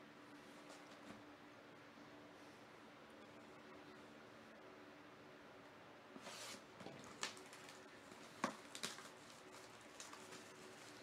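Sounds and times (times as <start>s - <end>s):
plastic wrap crinkling and tearing: 6.8s - 11.0s.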